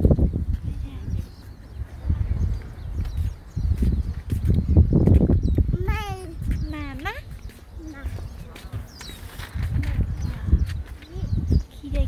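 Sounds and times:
low rumbling microphone noise: 0.0s - 12.0s.

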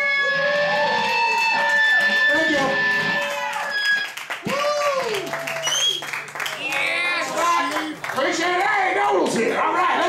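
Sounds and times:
electric guitar feedback tone: 0.0s - 4.1s.

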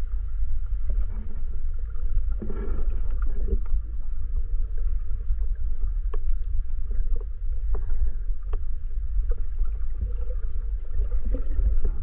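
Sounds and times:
underwater rumble of water: 0.0s - 12.0s.

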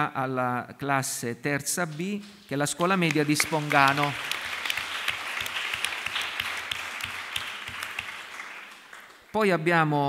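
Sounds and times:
audience applauding: 2.8s - 9.4s.

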